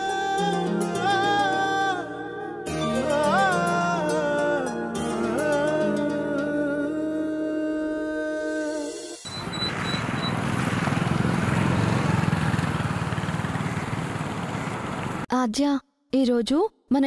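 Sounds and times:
background music held notes: 0:00.0 - 0:09.2
road traffic noise: 0:09.2 - 0:15.3.

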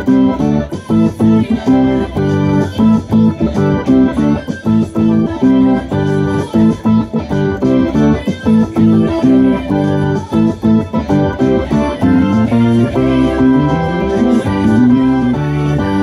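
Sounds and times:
organ chord stabs: 0:00.0 - 0:16.0
rock band with electric guitar: 0:00.0 - 0:16.0.

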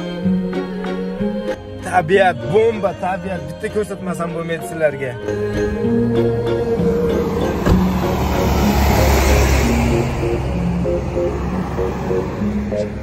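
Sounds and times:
background music slow held notes: 0:00.0 - 0:13.0
lorry passing: 0:00.0 - 0:13.0.

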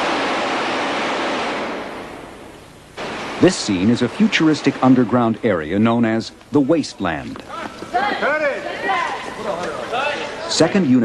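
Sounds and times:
loud rushing blast: 0:00.0 - 0:05.4.

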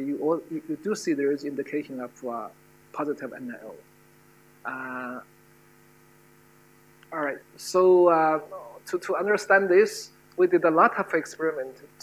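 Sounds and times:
faint electrical mains hum: 0:00.0 - 0:12.0
person saying uh: 0:04.7 - 0:05.2.

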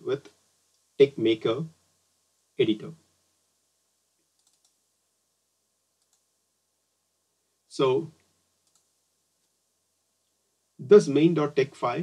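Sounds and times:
faint click: 0:06.0 - 0:06.3, 0:08.2 - 0:09.6.

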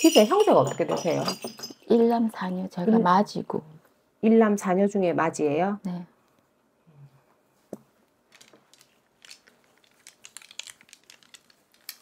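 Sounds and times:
cloth rustling and crinkling: 0:07.6 - 0:12.0.

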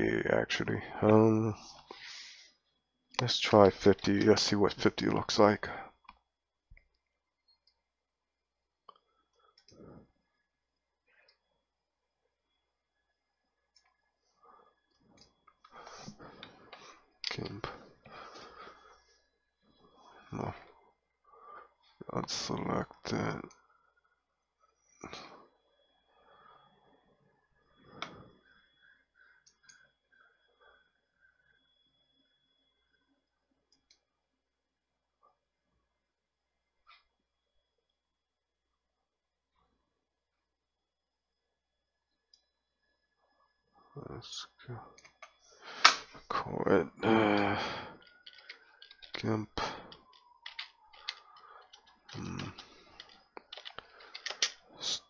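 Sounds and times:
faint high whine: 0:00.0 - 0:55.0
computer mouse clicks: 0:48.0 - 0:49.2, 0:49.9 - 0:54.6.

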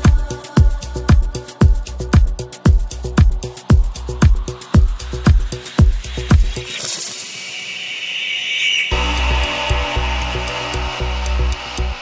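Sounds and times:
house music kick drum and bass: 0:00.0 - 0:07.3, 0:08.9 - 0:12.0
ticking hi-hats: 0:00.0 - 0:07.8, 0:08.9 - 0:12.0.

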